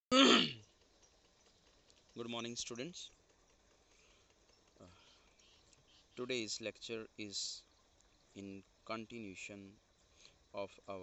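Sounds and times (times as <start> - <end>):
man clearing throat: 0.1 - 0.6.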